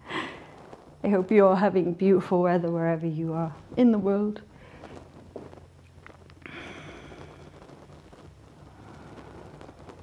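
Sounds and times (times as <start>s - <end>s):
faint low steady hum: 0.0s - 10.0s
soft breath out: 6.4s - 7.9s.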